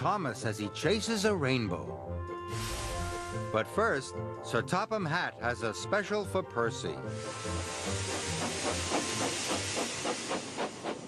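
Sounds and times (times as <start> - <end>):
steam hissing: 2.5 - 3.5, 7.0 - 11.0
steam locomotive puffing: 2.5 - 3.6, 7.0 - 11.0.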